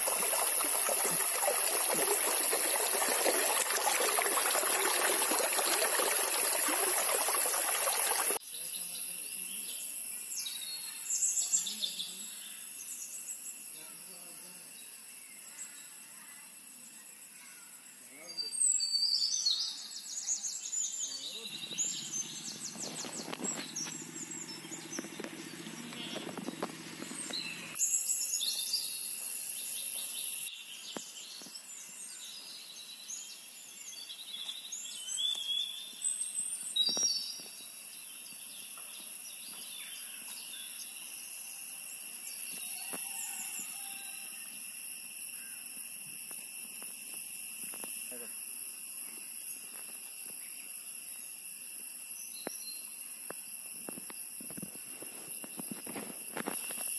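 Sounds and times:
insect drone: 0.0 - 56.9
birds chirping: 20.9 - 27.8.

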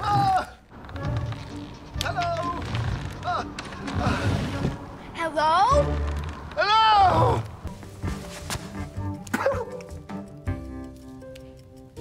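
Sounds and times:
soundtrack music with held notes: 0.7 - 12.0.

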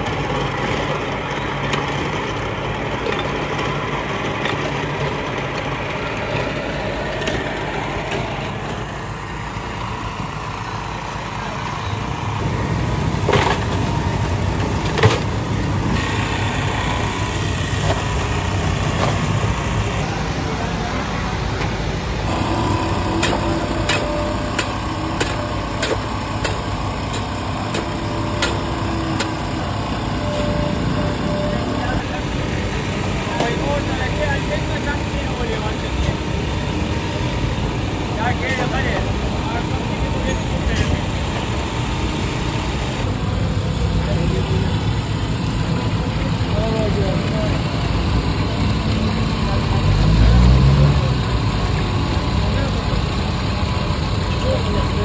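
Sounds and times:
small engine running: 0.0 - 55.0
street noise: 0.0 - 55.0
people talking: 10.2 - 12.5, 18.9 - 55.0.

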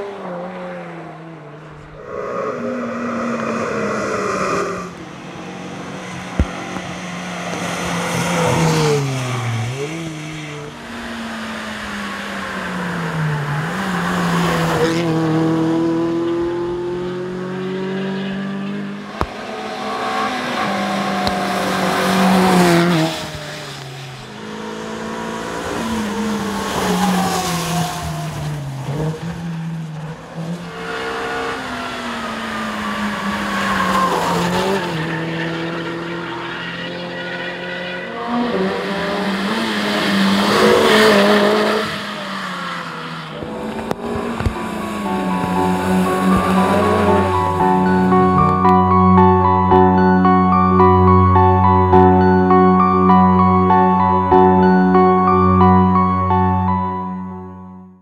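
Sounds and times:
rally car engines revving: 0.0 - 49.4.

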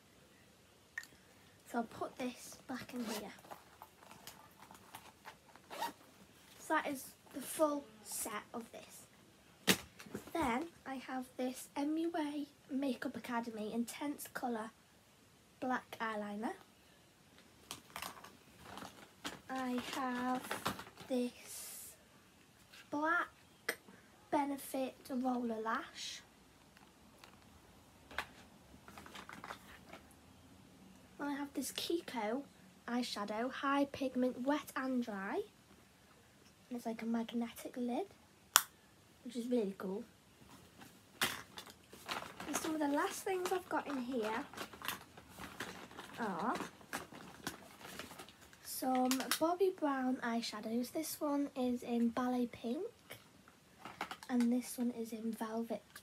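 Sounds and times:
zip being pulled shut: 5.6 - 6.0
makeup packaging clicks and rattles: 17.6 - 21.1, 28.1 - 30.1, 41.2 - 49.4, 53.8 - 54.4.

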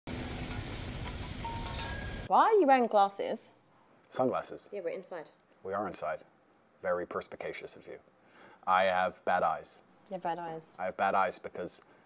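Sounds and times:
charcoal grill sizzling: 0.1 - 2.3.

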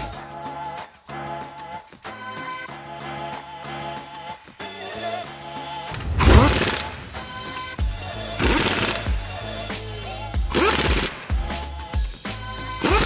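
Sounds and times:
background music with steady beat: 0.0 - 13.0
pneumatic impact wrench bursts: 6.2 - 7.7, 8.4 - 9.4, 10.5 - 11.2, 12.8 - 13.0.

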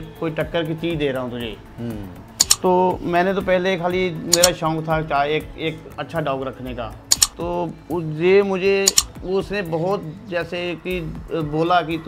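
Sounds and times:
man's drawn-out vocal sound: 1.8 - 2.2
mouse click sound effects: 2.4 - 2.6, 4.3 - 4.5, 7.1 - 7.4, 8.9 - 9.1.

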